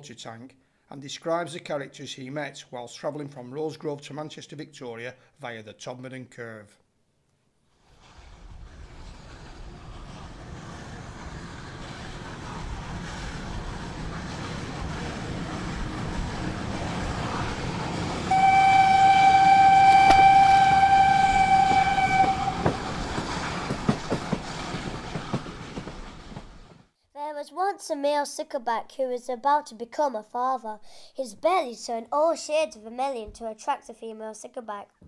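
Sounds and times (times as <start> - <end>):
train rumbling past: 7.8 - 26.9
rail clicks: 7.9 - 26.8
train whistle: 18.3 - 23.1.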